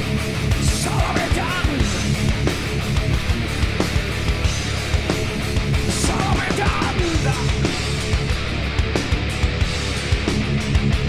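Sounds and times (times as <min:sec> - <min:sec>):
busy drums: 0:00.0 - 0:11.0
driving guitar riff: 0:00.0 - 0:11.0
heavy metal band playing live: 0:00.0 - 0:11.0.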